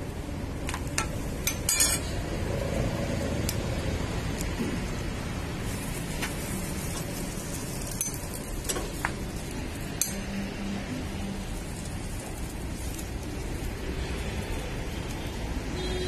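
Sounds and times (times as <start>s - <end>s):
metal utensils clinking on griddle: 0.9s - 2.1s, 6.8s - 10.4s.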